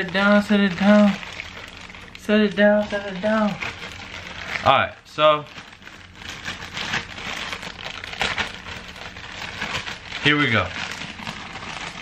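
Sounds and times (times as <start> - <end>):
packaging rustling and crackling: 0.0 - 12.0.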